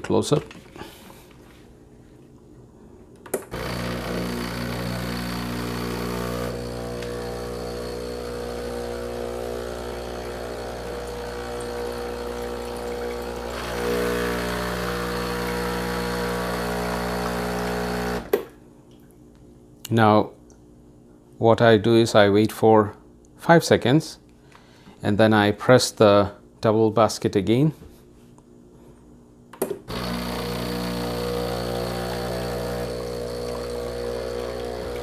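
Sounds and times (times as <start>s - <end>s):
espresso machine pump humming: 3.5s - 18.4s, 29.9s - 35.0s
liquid streaming into a cup: 3.6s - 18.3s, 29.9s - 35.0s.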